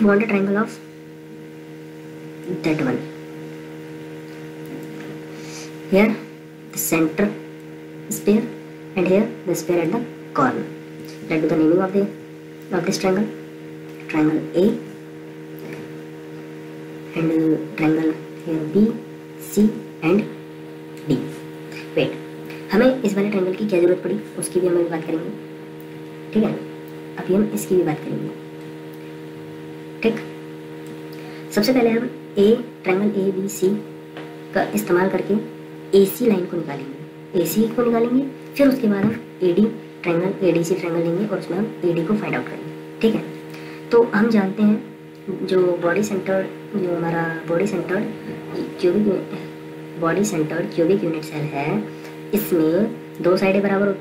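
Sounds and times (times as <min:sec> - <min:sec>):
electrical mains hum: 0:00.0 - 0:54.0.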